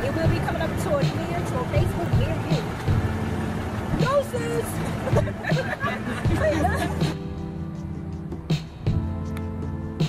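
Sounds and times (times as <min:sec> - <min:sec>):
vehicle engines idling: 0:00.0 - 0:10.0.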